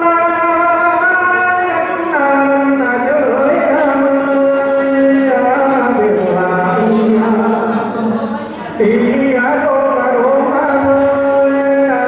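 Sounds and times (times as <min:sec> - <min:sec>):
man singing a long note: 0:00.0 - 0:12.0.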